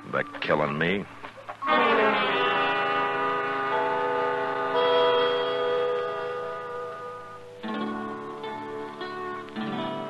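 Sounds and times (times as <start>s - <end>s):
orchestral brass chords: 1.6s - 8.2s.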